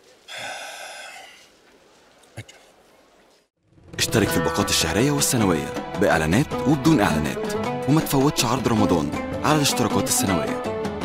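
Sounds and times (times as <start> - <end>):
man sighing heavily: 0.3 - 1.5.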